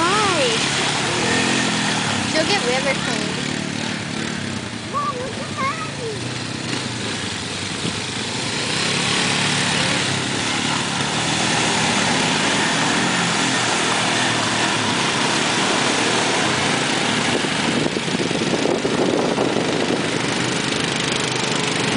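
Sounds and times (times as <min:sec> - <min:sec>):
quad engine running: 0:00.0 - 0:21.9
tyres churning mud: 0:00.0 - 0:21.9.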